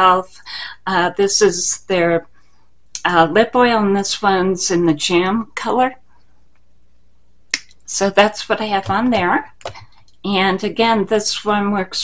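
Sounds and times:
person talking: 0.0 - 2.2, 3.0 - 6.0, 7.8 - 12.0.

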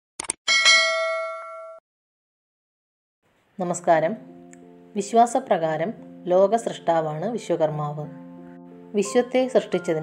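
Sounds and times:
notification bell ding: 0.5 - 1.8.

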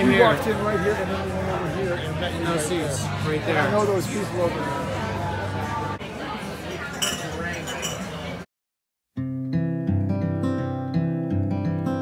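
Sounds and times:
glasses and dishes clinking: 6.7 - 8.3.

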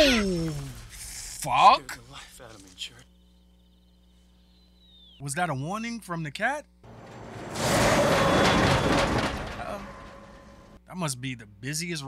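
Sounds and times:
heavy truck passing fast: 6.9 - 10.7.

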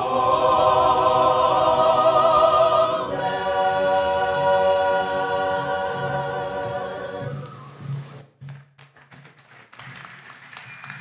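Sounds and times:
choir singing in harmony: 0.0 - 7.8.

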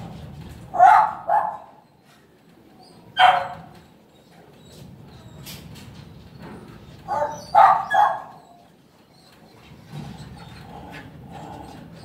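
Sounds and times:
dog barking: 0.7 - 1.8, 3.2 - 3.7, 7.1 - 8.6.

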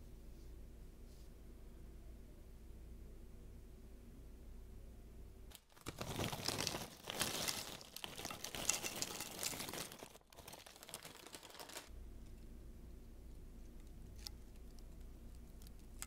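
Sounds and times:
chips crinkling onto plate: 5.5 - 11.9.

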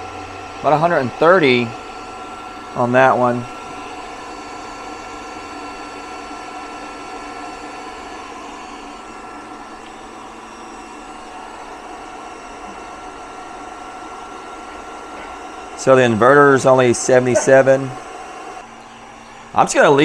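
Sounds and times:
cooling fans running: 0.0 - 20.0
heat gun whirring: 0.0 - 20.0
steady high tones: 0.0 - 20.0.

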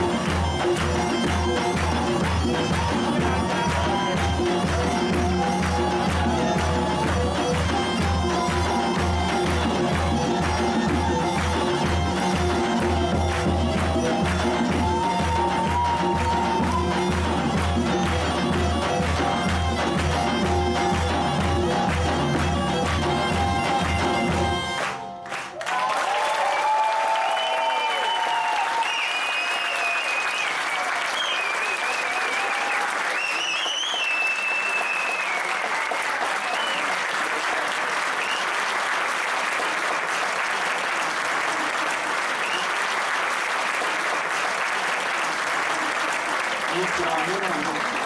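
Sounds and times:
audience applauding: 0.0 - 48.0
cheering and whistling: 5.1 - 7.3, 13.8 - 17.3, 25.5 - 38.8, 42.2 - 43.1.

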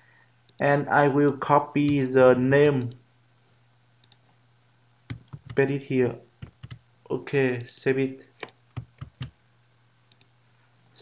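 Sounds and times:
faint low hum: 0.0 - 11.0
computer clicks: 4.0 - 4.3, 5.1 - 5.6, 6.4 - 6.8, 8.4 - 9.3, 10.1 - 10.3.

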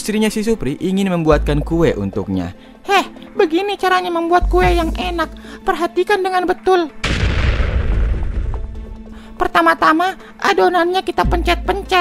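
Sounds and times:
loud boom with deep rumble: 7.0 - 8.8.

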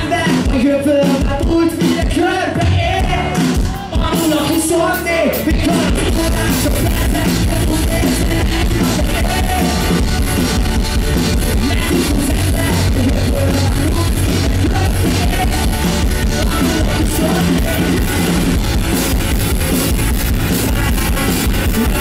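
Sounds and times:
live rock band playing: 0.0 - 22.0.

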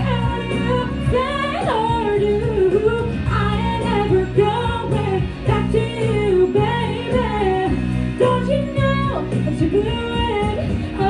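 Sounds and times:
backing music: 0.0 - 11.0
woman singing into a microphone: 0.0 - 11.0.

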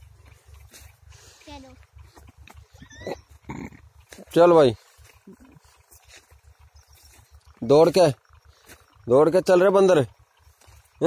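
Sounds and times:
dog yelping: 2.7 - 3.8.

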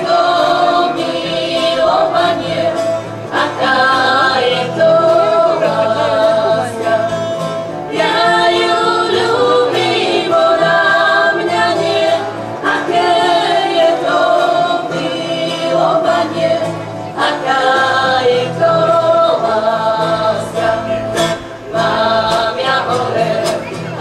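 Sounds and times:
strummed acoustic guitars: 0.0 - 24.0
women singing together: 0.0 - 24.0.

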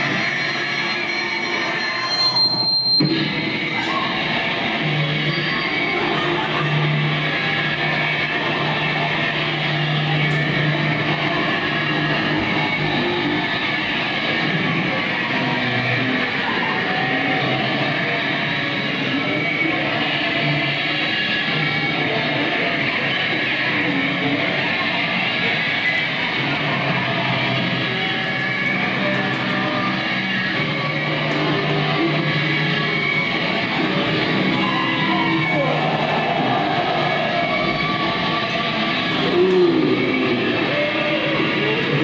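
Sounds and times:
electric guitar noise wall: 0.0 - 42.0.

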